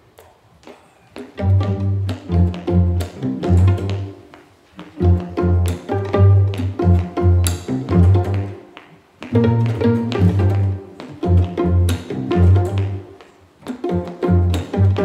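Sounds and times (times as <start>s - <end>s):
faint taps: 0.2s - 15.0s
fiddles and cellos playing: 1.2s - 15.0s.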